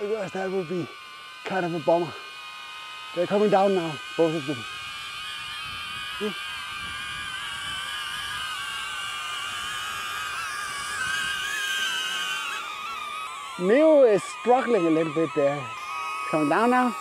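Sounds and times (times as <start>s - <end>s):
drone propellers whining: 0.0s - 17.0s.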